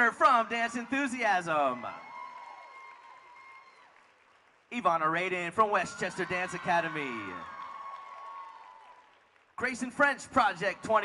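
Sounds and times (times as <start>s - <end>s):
audience applause and cheering: 0.0s - 11.0s.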